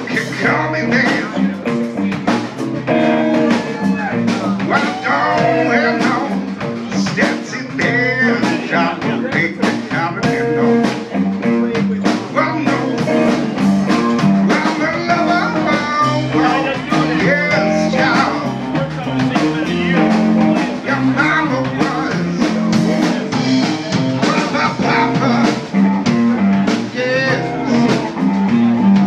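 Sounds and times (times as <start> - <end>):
live blues-rock band: 0.0 - 29.0
person singing: 0.0 - 29.0.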